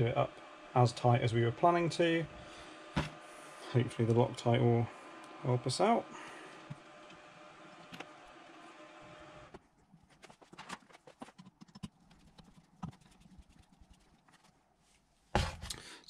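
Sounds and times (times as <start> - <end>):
plastic bottle set down: 3.0 - 3.2.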